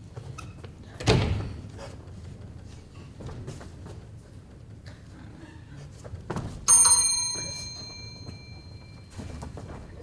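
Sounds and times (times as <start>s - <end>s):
metallic bell ding: 6.7s - 9.2s.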